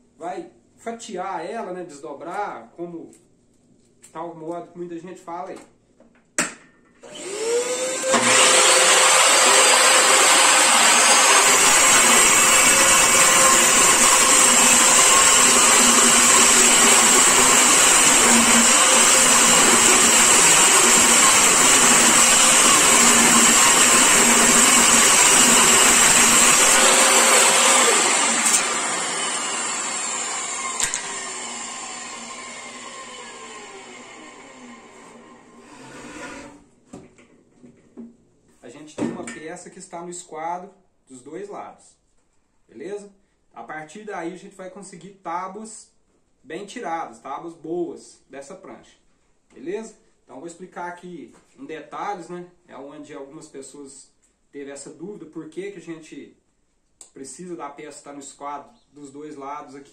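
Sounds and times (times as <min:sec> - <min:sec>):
saw blade winding down: 0:07.0 - 0:36.5
table saw ripping wood: 0:07.0 - 0:36.7.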